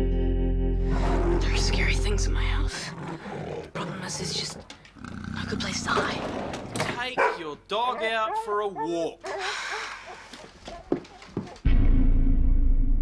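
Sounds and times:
music: 0:00.0 - 0:02.7, 0:11.7 - 0:13.0
dog growling and sniffing: 0:02.7 - 0:06.6, 0:08.0 - 0:11.6
dog whining cry: 0:07.2 - 0:11.6.

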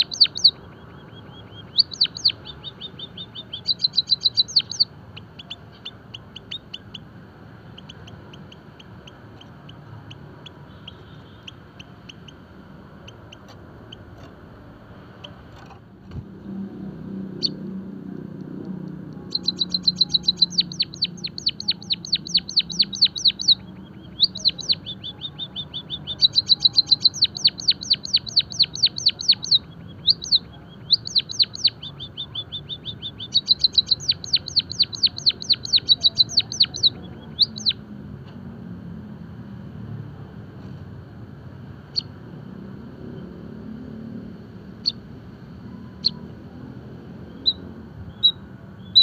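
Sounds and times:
bird singing high thin notes: 0:19.3 - 0:37.8.

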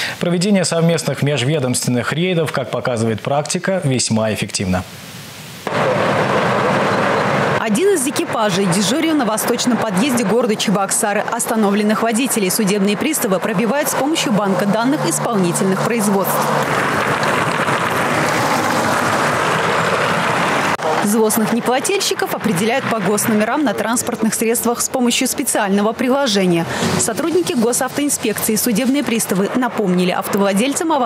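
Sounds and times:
passing road traffic: 0:05.6 - 0:31.0.

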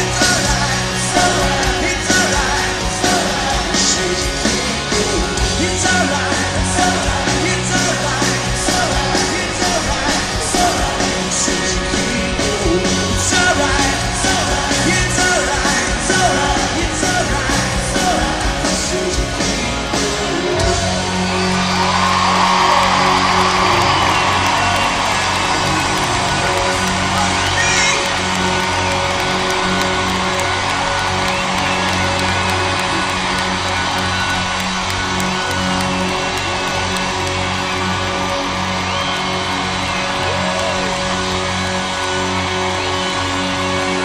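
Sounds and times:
crowd cheering and whooping: 0:00.0 - 0:44.0
live rock band playing: 0:00.0 - 0:44.0.

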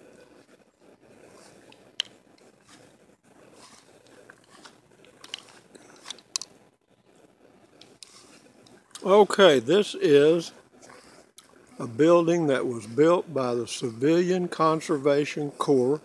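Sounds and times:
footsteps in grass: 0:01.2 - 0:06.3, 0:07.1 - 0:09.1.

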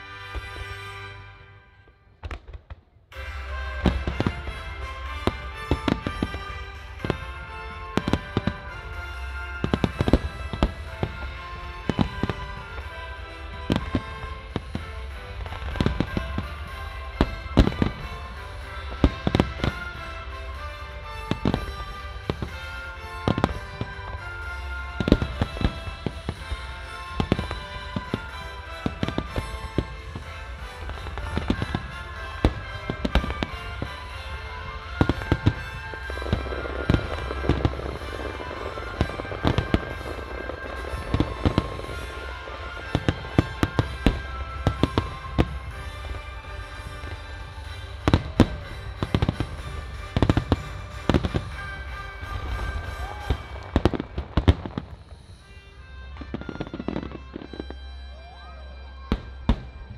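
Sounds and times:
music playing: 0:00.0 - 0:02.4, 0:03.1 - 0:59.9
dense firework crackling: 0:01.8 - 0:59.9.

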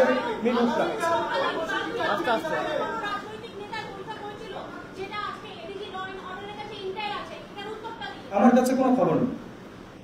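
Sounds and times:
indistinct chatter of voices: 0:00.0 - 0:08.3.

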